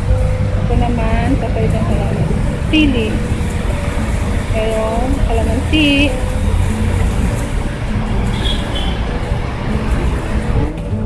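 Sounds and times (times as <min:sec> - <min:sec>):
people talking indistinctly: 0:00.7 - 0:06.5.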